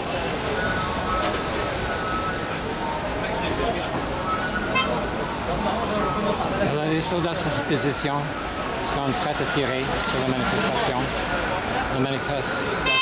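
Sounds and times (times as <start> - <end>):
road traffic: 0.0 - 13.0.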